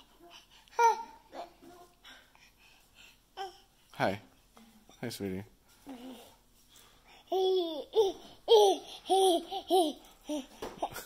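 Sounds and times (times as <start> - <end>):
baby high-pitched vocal sounds: 0.1 - 1.6, 7.3 - 10.9.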